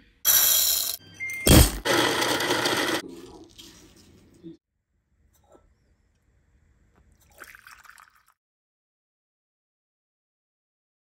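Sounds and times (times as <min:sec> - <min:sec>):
kitchen scale beep: 0:01.0 - 0:01.5.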